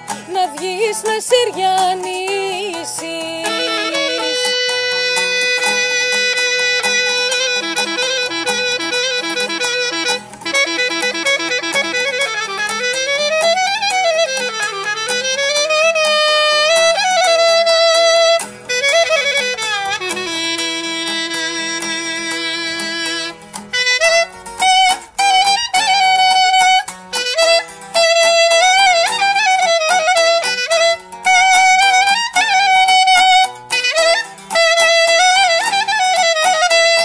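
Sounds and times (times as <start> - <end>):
clarinet folk melody: 0.0 - 37.0
strummed lute: 0.0 - 37.0.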